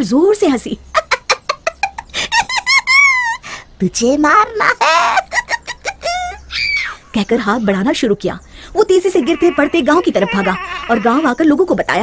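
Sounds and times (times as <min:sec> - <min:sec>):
high-pitched cackling laugh: 0:01.0 - 0:03.4, 0:04.7 - 0:07.0.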